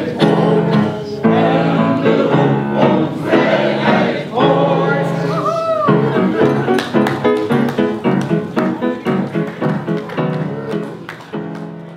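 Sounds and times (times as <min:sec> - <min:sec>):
group of people singing: 0:00.0 - 0:05.4.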